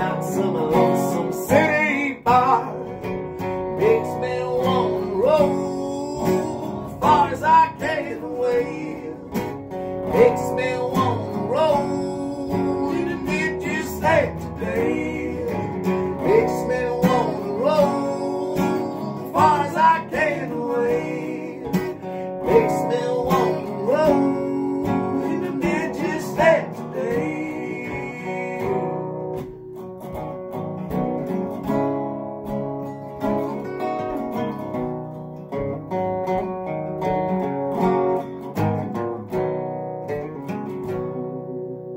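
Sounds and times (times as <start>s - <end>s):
acoustic guitar strumming: 0.0s - 41.9s
resonator guitar picking lead: 0.0s - 41.9s.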